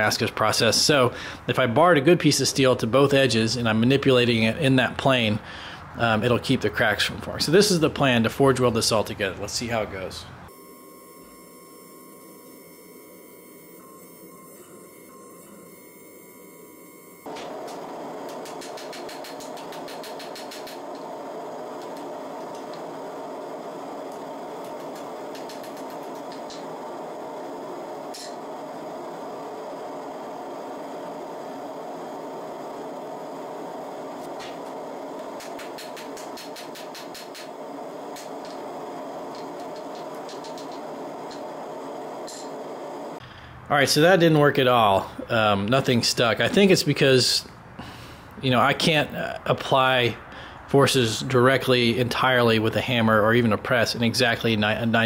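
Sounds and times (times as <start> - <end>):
steady rushing noise: 17.3 - 44.6.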